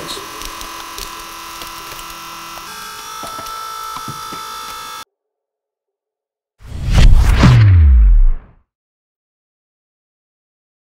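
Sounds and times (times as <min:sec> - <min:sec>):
motor and pump whine: 0:00.0 - 0:05.1.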